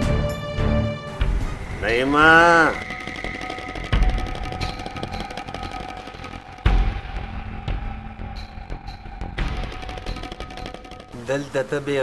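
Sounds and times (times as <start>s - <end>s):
sustained drone: 1.1s - 12.0s
pitched swell: 1.2s - 11.6s.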